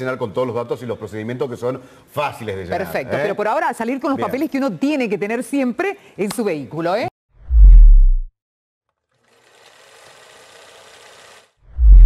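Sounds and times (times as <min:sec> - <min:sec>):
film projector whirring: 0:09.1 - 0:11.6.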